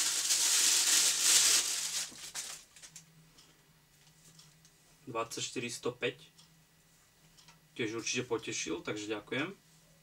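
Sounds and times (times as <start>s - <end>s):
plastic packaging crinkling: 0.0s - 3.0s.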